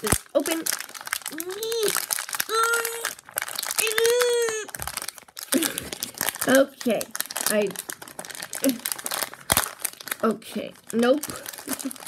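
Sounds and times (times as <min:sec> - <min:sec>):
foil bag crinkling: 0:00.0 - 0:12.0
girl straining sounds: 0:01.3 - 0:03.2, 0:03.8 - 0:06.2.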